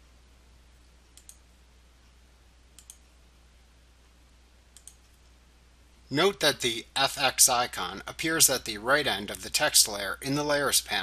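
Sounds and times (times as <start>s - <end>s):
faint room hum: 0.0s - 11.0s
computer mouse clicks: 1.0s - 1.5s, 2.7s - 3.1s, 4.7s - 5.3s.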